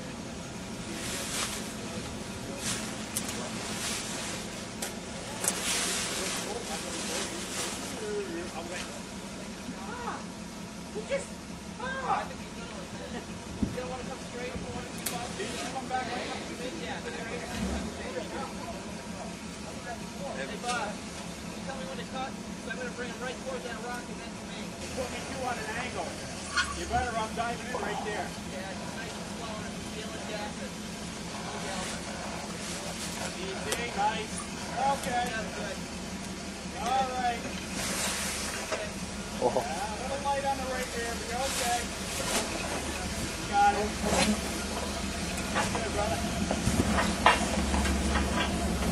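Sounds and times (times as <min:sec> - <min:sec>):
car engine crawling over rock: 0:00.0 - 0:48.9
faint voices: 0:00.0 - 0:48.9.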